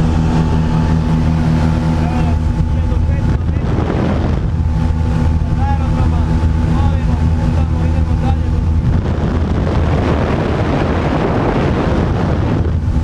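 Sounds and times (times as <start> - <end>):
propeller plane engine droning: 0.0 - 13.0
wind noise: 0.0 - 13.0.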